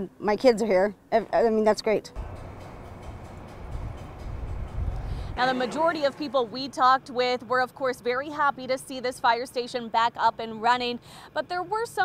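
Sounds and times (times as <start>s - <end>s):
low outdoor rumble: 2.1s - 8.8s.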